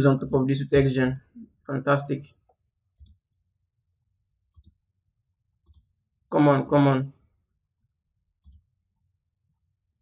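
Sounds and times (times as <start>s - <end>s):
computer mouse click: 2.9s - 3.2s, 4.5s - 4.8s, 5.6s - 5.9s, 8.4s - 8.7s.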